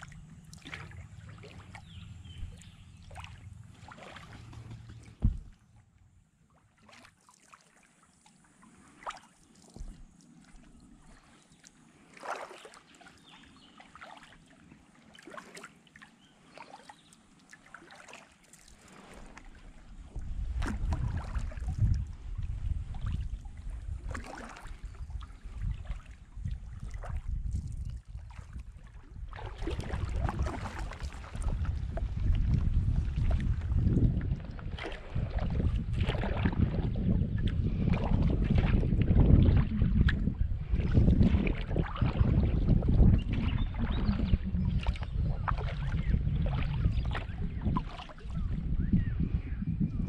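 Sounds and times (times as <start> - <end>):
wind buffeting microphone: 0.0 - 5.6, 19.7 - 50.0
paddle dipping and dripping water: 0.0 - 49.3.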